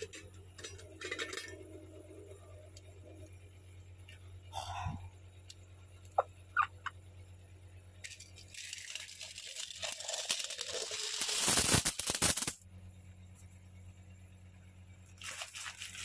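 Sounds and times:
coins pouring onto cloth: 0:08.5 - 0:12.6, 0:15.2 - 0:16.0.

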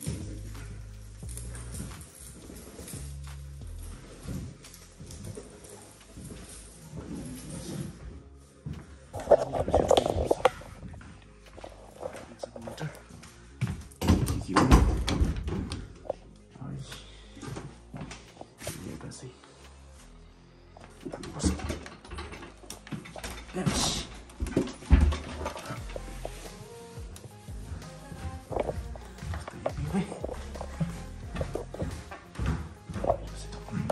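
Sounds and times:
faint music with held notes: 0:00.0 - 0:33.9.

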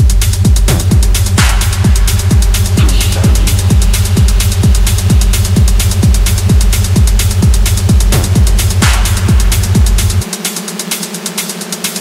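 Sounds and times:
gritty buzzing synth loop: 0:00.0 - 0:12.0
rapid hi-hat ticks: 0:00.0 - 0:12.0
techno kick drum and bass: 0:00.0 - 0:12.0.

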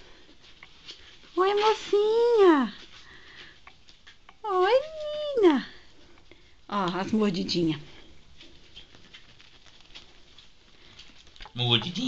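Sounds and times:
ferret scrabbling on bedding: 0:08.3 - 0:12.0.

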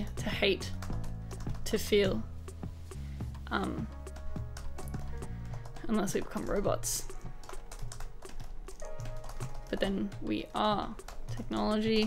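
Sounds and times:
typing on computer keyboard: 0:00.0 - 0:01.8, 0:03.5 - 0:12.0
soft background music: 0:00.0 - 0:12.0.

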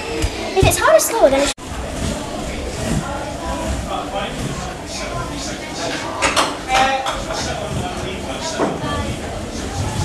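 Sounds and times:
voices talking in echoing hall: 0:00.0 - 0:10.0.

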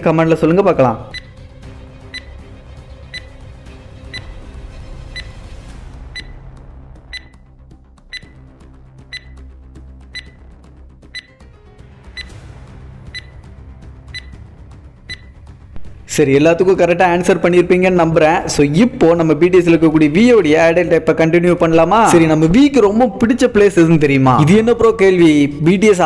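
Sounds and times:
countdown timer ticking: 0:00.0 - 0:15.6
soft background music: 0:00.0 - 0:26.0.

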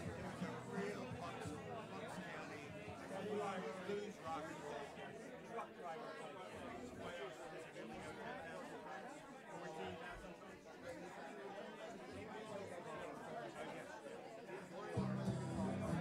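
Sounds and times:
crowd chatter: 0:00.0 - 0:16.0.

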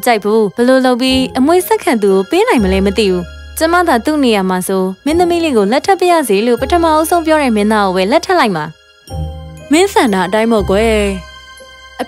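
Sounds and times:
woman speaking: 0:00.0 - 0:08.8, 0:09.7 - 0:11.3
tinkling chime music: 0:00.4 - 0:12.0.

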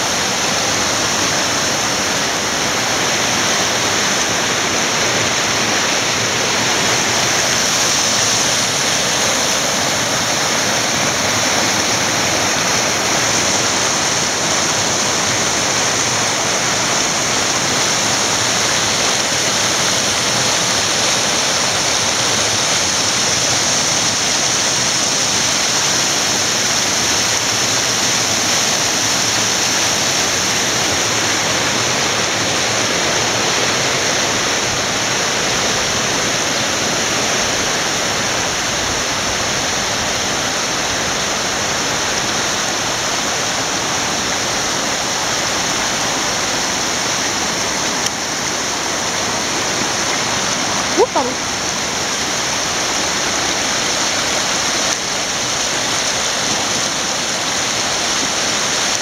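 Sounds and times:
river rushing loudly: 0:00.0 - 0:59.0.

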